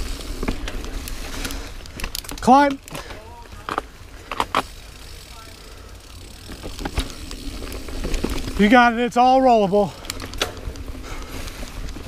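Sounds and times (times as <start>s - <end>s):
bike knocks and rattles: 0.0s - 8.9s, 10.1s - 12.0s
mountain bike rolling over dirt: 0.0s - 12.0s.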